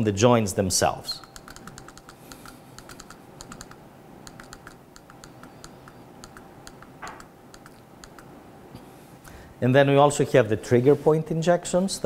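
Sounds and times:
keyboard typing clicks: 1.2s - 8.3s.

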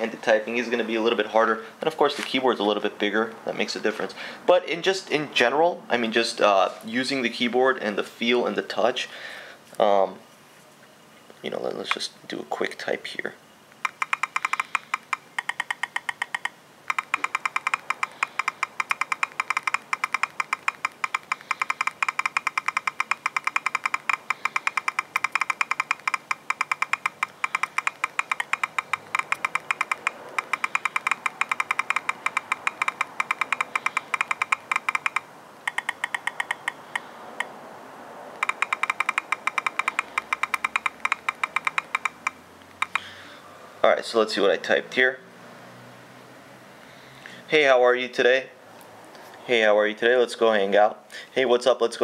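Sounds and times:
touchscreen keyboard clicks: 13.8s - 37.6s, 38.3s - 43.2s.

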